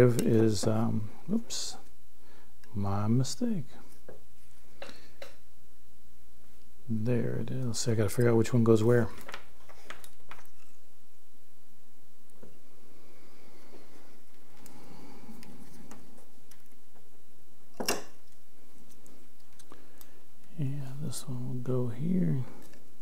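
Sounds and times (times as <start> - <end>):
light handling clicks of small parts: 0.1 - 0.4.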